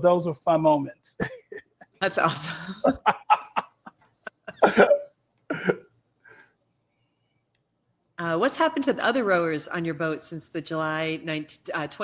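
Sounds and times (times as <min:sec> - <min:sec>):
woman laughing: 0:01.2 - 0:05.8.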